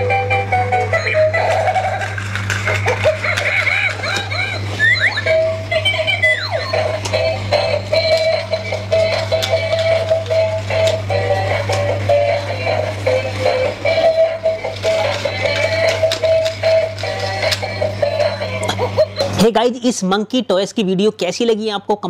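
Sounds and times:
toy playing electronic tune: 0.0s - 19.5s
steady low hum: 0.0s - 21.0s.

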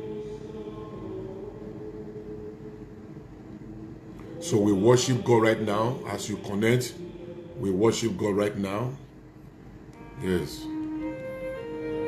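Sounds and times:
sustained keyboard chords: 9.9s - 12.0s.

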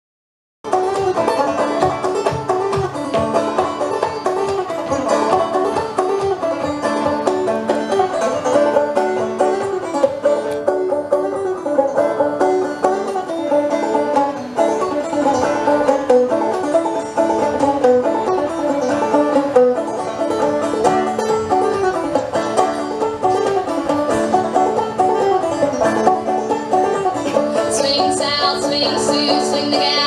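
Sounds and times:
solo banjo playing: 0.6s - 30.0s
person singing: 27.6s - 30.0s.

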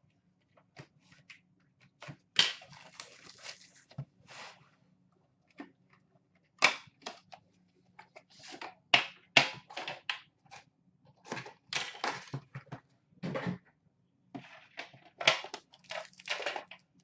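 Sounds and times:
cardboard tearing and rustling: 2.6s - 3.9s.

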